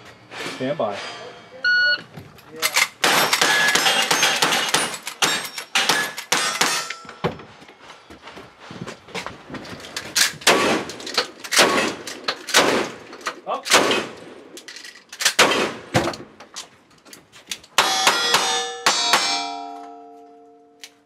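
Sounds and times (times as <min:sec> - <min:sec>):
rifle shots: 0:03.0 - 0:06.9, 0:10.5 - 0:13.1, 0:13.7 - 0:14.4, 0:15.3 - 0:15.9
steel targets ringing: 0:03.0 - 0:07.2, 0:17.8 - 0:20.8
shotgun shot: 0:10.5 - 0:10.9, 0:11.6 - 0:13.0, 0:13.7 - 0:14.2, 0:15.4 - 0:16.0
gun handling clicks: 0:14.5 - 0:15.4.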